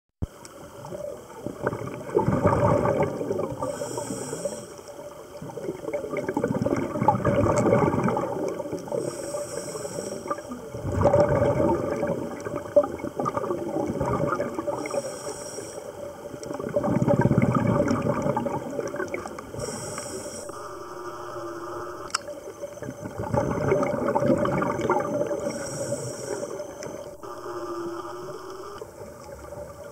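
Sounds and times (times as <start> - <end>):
exhaled bubbles rushing: 0.8 - 3.8, 5.3 - 9.1, 10.3 - 15.0, 16.2 - 19.6, 20.5 - 25.6
regulator inhale hiss: 3.5 - 5.3, 8.8 - 10.8, 14.6 - 16.3, 19.3 - 22.9, 25.0 - 28.8.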